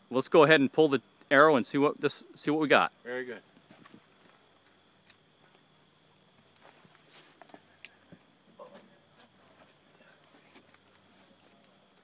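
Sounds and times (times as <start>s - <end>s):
high insect chirring: 0.0s - 12.0s.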